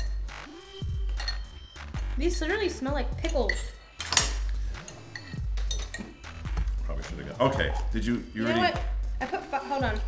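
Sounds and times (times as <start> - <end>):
metal cutlery clinking on glass: 3.2 - 6.3.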